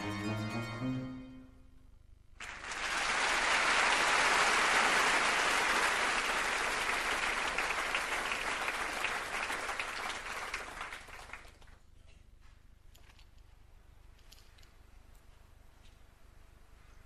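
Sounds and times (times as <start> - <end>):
music: 0.0 - 1.9
theatre audience applauding: 2.4 - 11.8.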